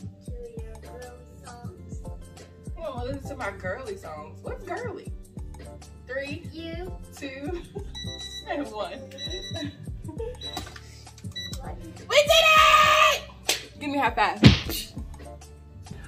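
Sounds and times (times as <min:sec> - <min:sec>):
background music: 0:00.0 - 0:16.0
woman laughing: 0:07.4 - 0:10.6
woman shouting: 0:12.0 - 0:13.3.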